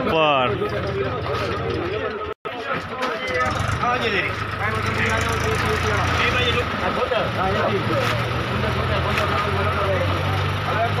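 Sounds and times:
men talking and calling: 0:00.0 - 0:11.0
engine idling: 0:00.5 - 0:07.6.

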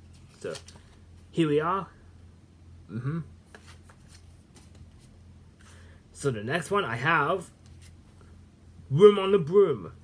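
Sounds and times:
paper rustling: 0:00.0 - 0:01.3, 0:03.5 - 0:05.2
person saying mm hmm: 0:02.9 - 0:03.4.

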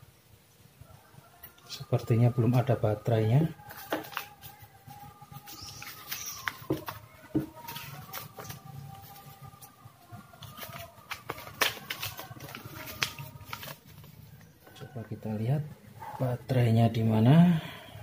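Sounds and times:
paper manual rustling: 0:03.5 - 0:14.9.

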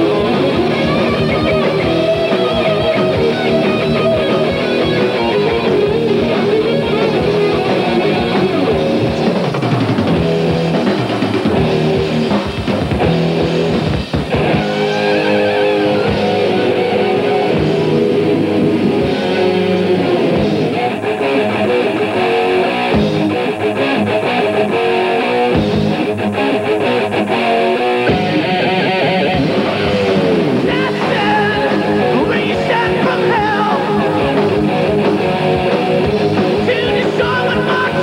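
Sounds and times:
doom metal band: 0:00.0 - 0:38.0
bent lead guitar note: 0:28.0 - 0:38.0.

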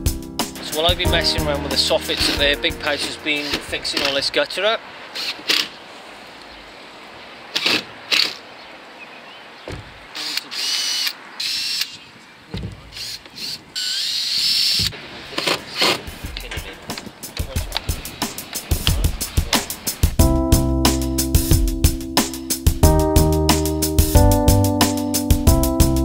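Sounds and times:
cordless drill whining: 0:05.2 - 0:05.8, 0:10.2 - 0:12.0, 0:12.8 - 0:16.1
knocks of gutter parts handled: 0:09.6 - 0:10.0.

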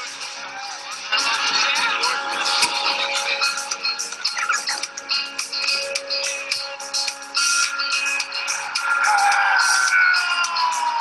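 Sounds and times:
soundtrack music with percussive beat: 0:00.0 - 0:11.0.

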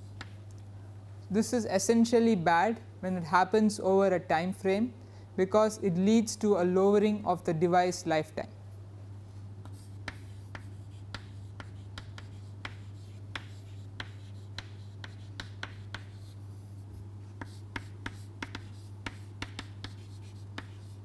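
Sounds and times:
chalk tapping and scratching: 0:00.0 - 0:00.4, 0:09.6 - 0:21.0.

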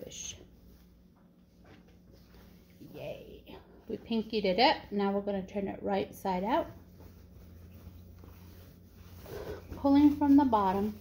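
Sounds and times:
steady low hum: 0:00.0 - 0:11.0
fabric rustling: 0:00.2 - 0:03.2, 0:06.3 - 0:11.0.

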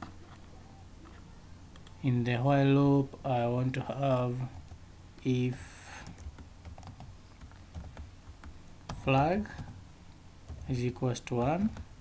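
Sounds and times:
computer keyboard typing: 0:06.0 - 0:09.8, 0:10.5 - 0:10.8.

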